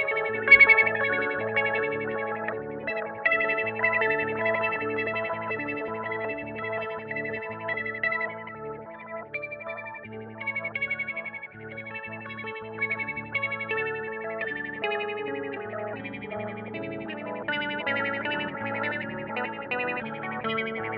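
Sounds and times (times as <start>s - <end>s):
electric guitar with envelope filter: 0.0s - 20.9s.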